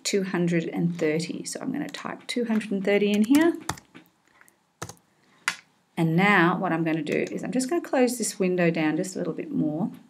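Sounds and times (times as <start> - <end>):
keyboard key presses: 1.9 - 4.1, 4.8 - 5.0.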